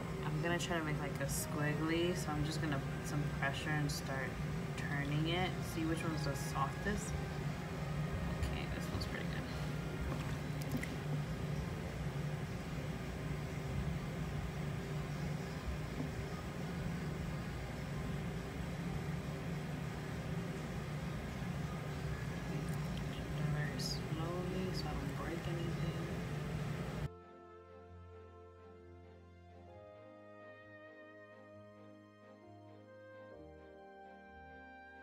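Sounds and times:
steady low hum: 0.0s - 27.2s
soft background music: 0.0s - 35.0s.

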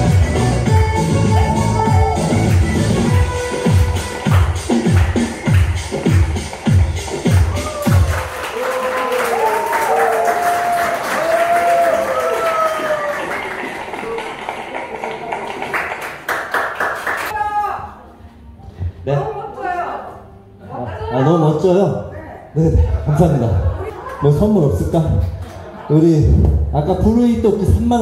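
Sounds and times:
dance music with heavy beat: 0.0s - 8.3s
people clapping: 2.2s - 17.4s, 23.9s - 24.5s, 25.2s - 25.8s.

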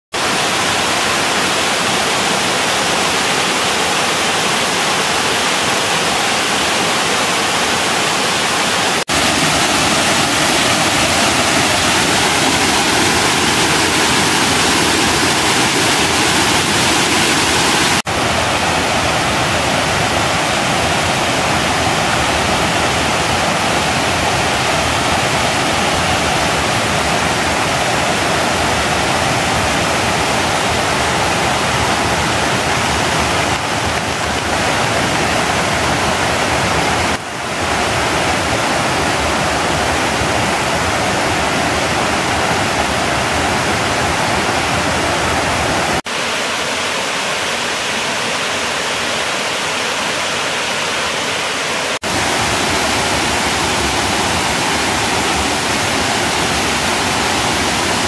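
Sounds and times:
waterfall rushing over rocks: 0.1s - 58.0s.

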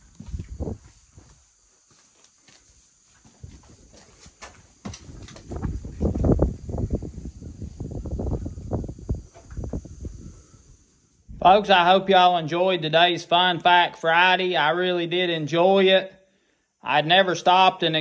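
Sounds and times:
footsteps: 0.0s - 6.4s.

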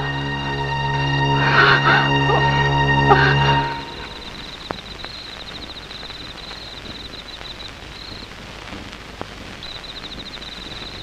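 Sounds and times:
insects chirping in pulsing trill: 0.0s - 8.4s, 9.6s - 11.0s
steady background hiss: 0.0s - 11.0s.

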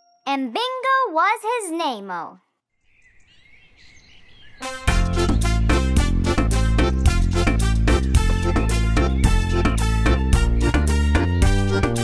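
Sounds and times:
bird chirps: 2.7s - 4.7s.

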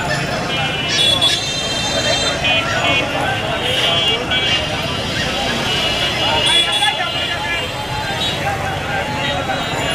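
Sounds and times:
many people talking: 0.0s - 9.9s
road traffic: 0.0s - 9.9s.

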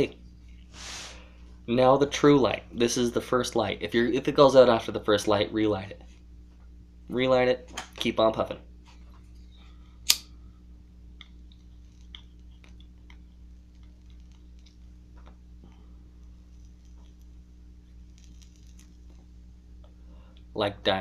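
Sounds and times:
steady low hum: 0.0s - 21.0s
breathy exhale of smoke: 0.7s - 1.5s
lighter click: 10.1s - 10.3s.

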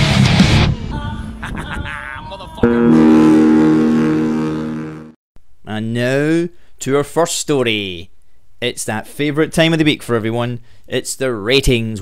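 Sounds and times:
guitar chord ringing: 2.6s - 5.2s
intro music: 2.6s - 5.2s.

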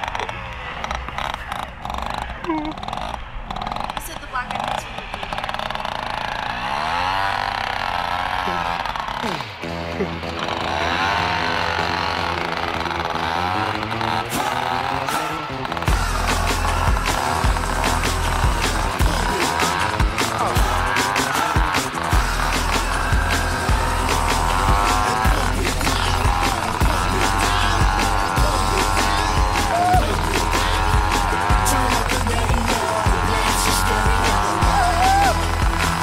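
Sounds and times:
moped engine revving: 0.0s - 36.0s.

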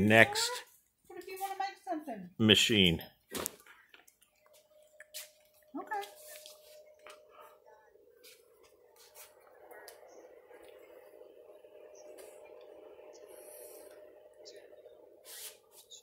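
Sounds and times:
faint steady hum: 0.0s - 16.0s
woman's voice: 0.5s - 2.3s, 5.7s - 6.4s.

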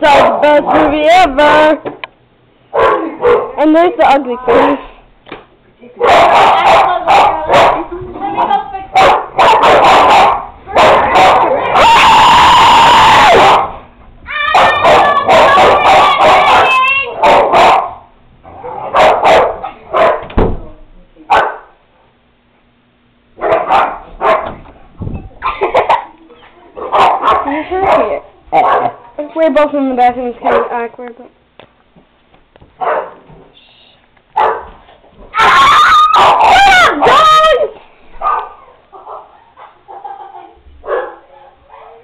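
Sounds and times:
dogs barking and yelping: 2.7s - 3.6s, 6.0s - 20.3s, 23.4s - 24.7s, 25.4s - 26.1s, 26.8s - 29.1s, 32.8s - 33.2s, 34.4s - 34.8s, 35.4s - 42.0s
girls screaming and laughing: 14.3s - 17.2s, 35.3s - 37.8s.

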